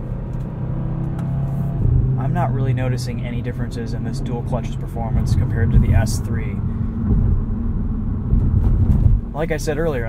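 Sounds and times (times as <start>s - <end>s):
car engine drone from cabin: 0.0s - 10.0s.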